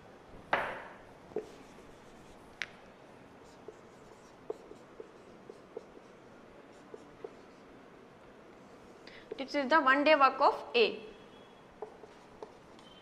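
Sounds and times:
marker pen writing on whiteboard: 0:01.3 - 0:07.8, 0:11.8 - 0:13.0
pen tapping board: 0:03.6 - 0:06.1, 0:06.9 - 0:07.4, 0:11.8 - 0:12.9.

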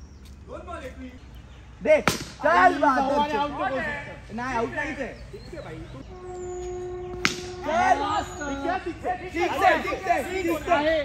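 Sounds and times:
cricket bat striking ball: 0:02.0 - 0:02.5, 0:07.1 - 0:07.7
players shouting: 0:07.1 - 0:11.0.

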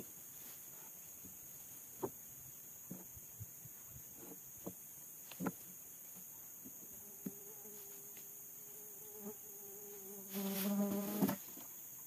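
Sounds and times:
high-pitched insect chorus: 0:00.0 - 0:12.0
flying insect buzzing: 0:06.9 - 0:11.6.

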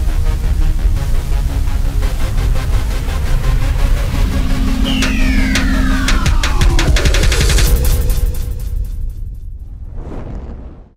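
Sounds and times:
loud outro music: 0:00.0 - 0:09.6.

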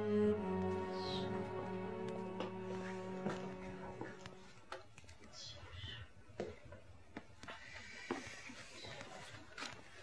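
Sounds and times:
faint footsteps: 0:00.2 - 0:10.0.

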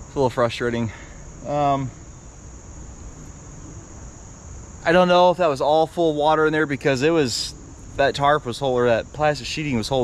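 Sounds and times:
insects chorus: 0:00.0 - 0:10.0.

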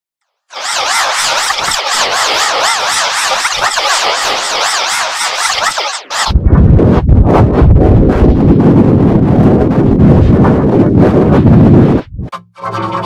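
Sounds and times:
distorted low rumble with crackle: 0:06.3 - 0:12.3.

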